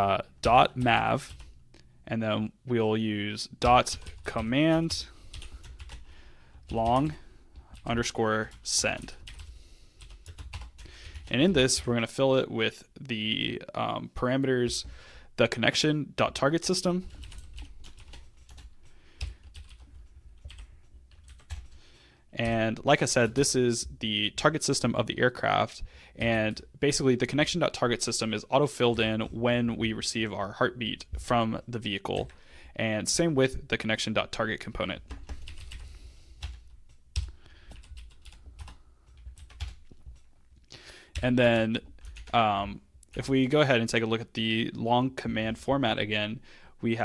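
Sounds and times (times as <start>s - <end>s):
typing on computer keyboard: 8.5s - 11.3s, 17.0s - 21.8s, 36.4s - 40.3s, 41.9s - 42.4s.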